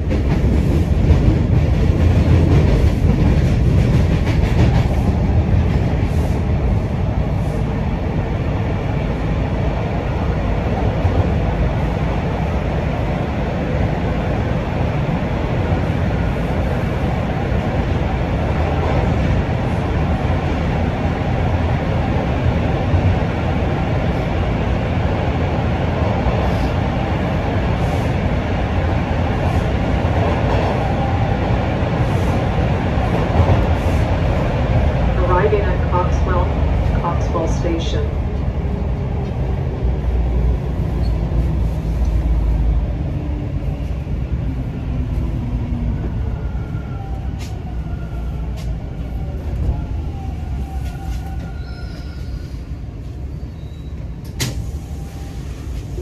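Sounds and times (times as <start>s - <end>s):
subway train rumble: 0.0s - 56.0s.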